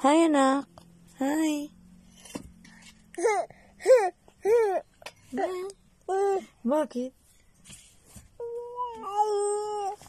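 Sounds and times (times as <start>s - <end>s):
toddler high-pitched call: 8.4s - 10.0s.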